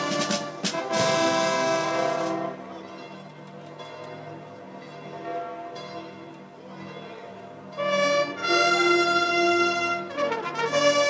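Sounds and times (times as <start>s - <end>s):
faint church bells ringing: 0.0s - 11.0s.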